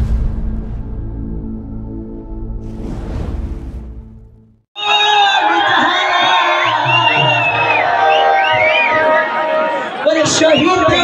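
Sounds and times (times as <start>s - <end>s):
audience noise: 5.1s - 11.0s.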